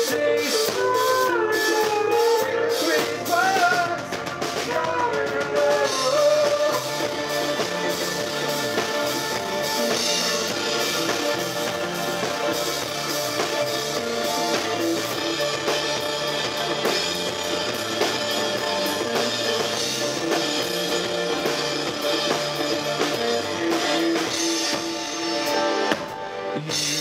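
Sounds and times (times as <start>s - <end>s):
drum kit beat: 0.0s - 27.0s
electric guitars: 0.0s - 27.0s.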